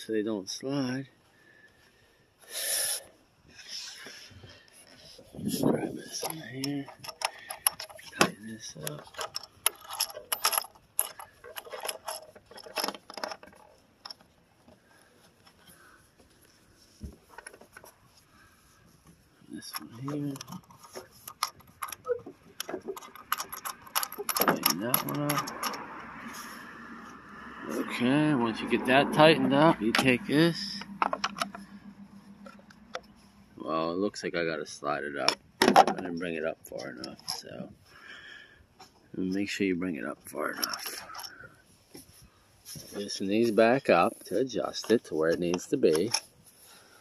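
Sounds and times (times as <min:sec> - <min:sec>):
knob clicking and rattling: 0:06.0 - 0:14.3, 0:19.7 - 0:26.0, 0:30.8 - 0:31.6.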